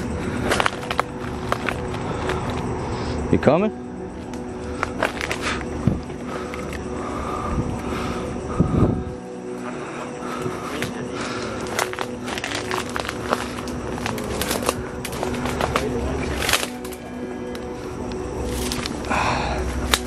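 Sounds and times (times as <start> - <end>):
low drone background music: 0.0 - 20.0
twigs and leaves crackling: 0.0 - 20.0.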